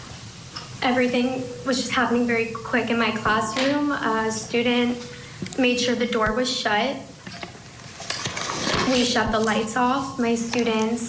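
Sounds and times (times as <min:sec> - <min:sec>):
woman speaking: 0:00.8 - 0:07.2, 0:08.8 - 0:11.0
woman breathing in: 0:05.1 - 0:05.5.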